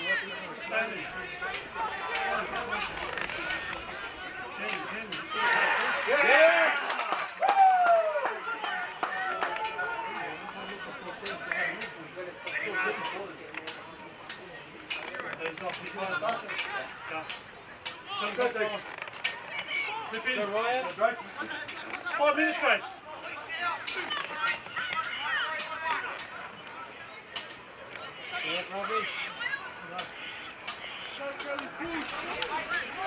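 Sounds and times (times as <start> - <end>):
players and spectators shouting: 0.0 - 33.0.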